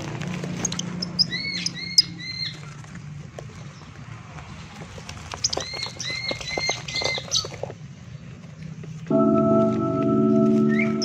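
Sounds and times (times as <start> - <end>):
birds scuffling in cages: 0.0 - 9.1
lovebirds chirping: 0.2 - 8.7, 10.3 - 11.0.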